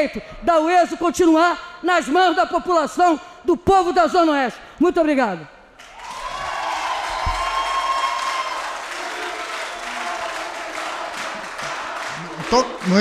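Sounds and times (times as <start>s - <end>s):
crowd applauding and cheering: 5.8s - 13.0s.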